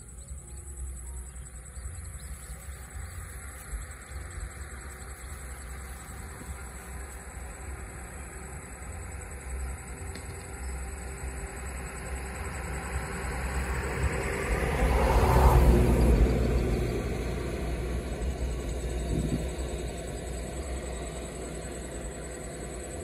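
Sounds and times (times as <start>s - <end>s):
low rumble: 0.0s - 23.0s.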